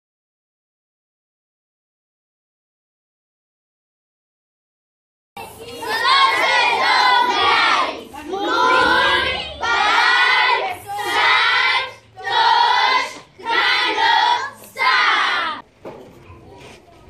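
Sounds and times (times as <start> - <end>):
children singing in unison: 5.4 - 15.6.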